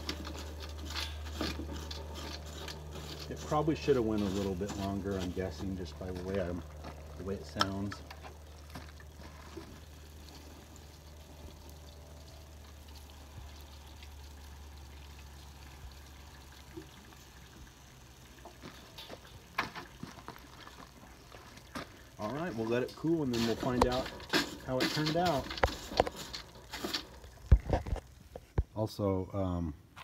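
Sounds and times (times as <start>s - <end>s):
water pouring and trickling: 0.0s - 28.4s.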